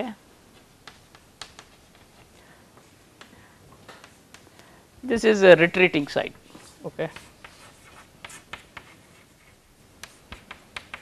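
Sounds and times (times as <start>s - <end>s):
chalk scratching on blackboard: 6.5s - 11.0s.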